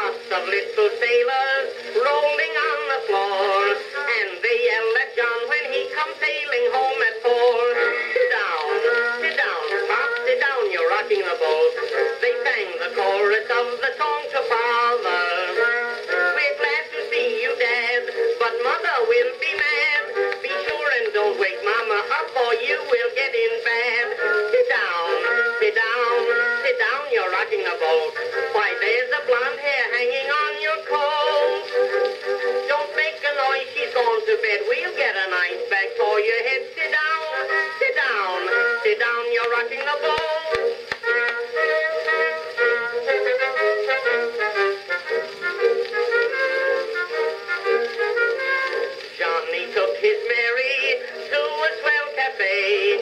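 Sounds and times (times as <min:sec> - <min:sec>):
band music on cylinder phonograph: 0:00.0 - 0:53.0.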